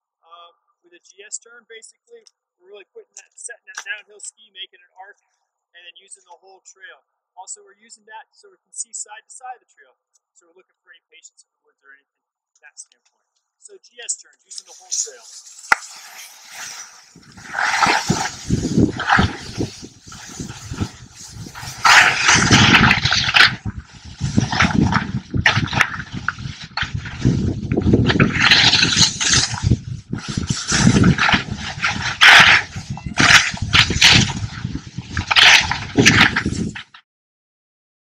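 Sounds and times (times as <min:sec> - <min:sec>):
ski edges scraping snow: 0:14.5 - 0:36.9
wind rumble on microphone: 0:16.6 - 0:37.0.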